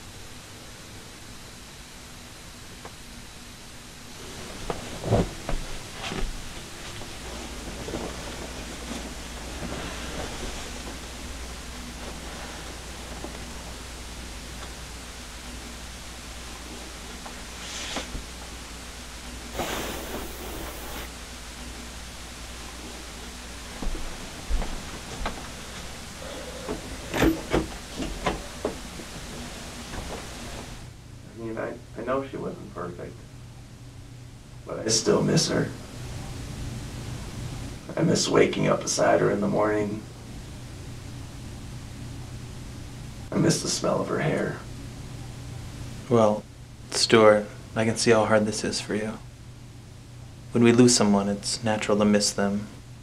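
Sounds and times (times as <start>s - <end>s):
low room hum: 0.0s - 53.0s
steady hiss: 0.0s - 53.0s
fabric rustling: 4.2s - 11.4s.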